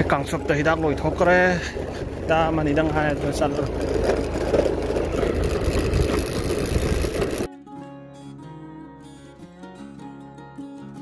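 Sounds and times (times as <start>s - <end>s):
vehicle running noise: 0.0s - 7.5s
plucked acoustic guitar music: 3.8s - 11.0s.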